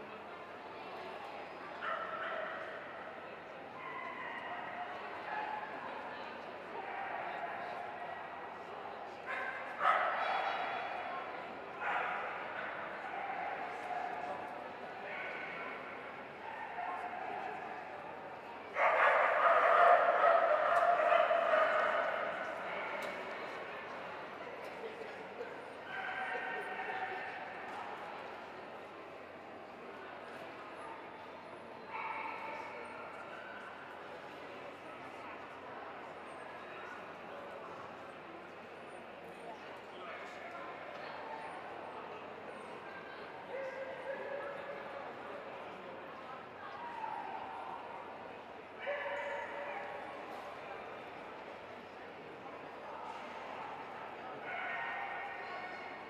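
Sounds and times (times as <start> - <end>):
crowd murmur in a hall: 0.0 - 56.0.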